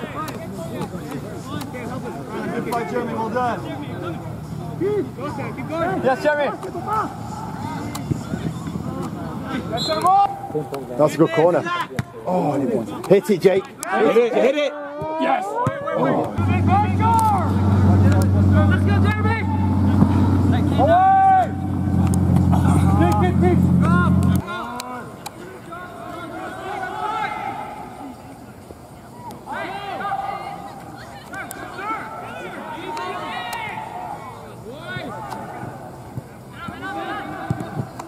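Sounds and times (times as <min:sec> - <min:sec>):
distant people shouting: 0:04.7 - 0:10.7, 0:13.8 - 0:25.1, 0:29.1 - 0:38.0
steady low engine hum: 0:16.4 - 0:24.4.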